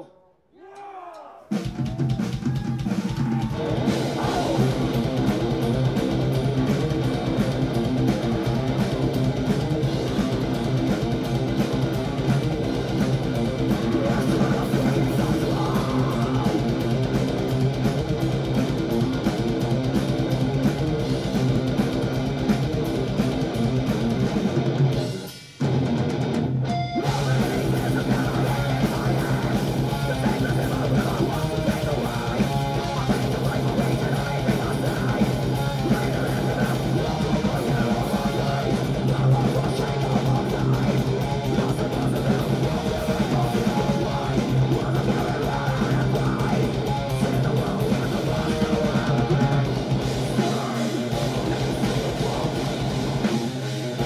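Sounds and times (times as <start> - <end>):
person shouting: 0.5 - 4.6
live rock band playing: 1.6 - 54.0.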